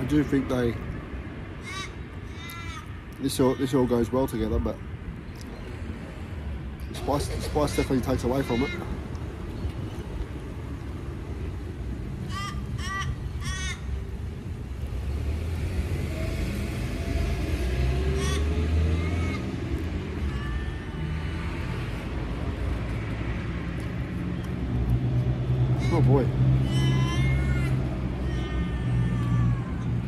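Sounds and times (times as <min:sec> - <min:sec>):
bird calling: 0:07.4 - 0:09.0, 0:12.2 - 0:14.1, 0:17.0 - 0:21.1, 0:25.7 - 0:29.8
faint bird calls: 0:12.2 - 0:14.0.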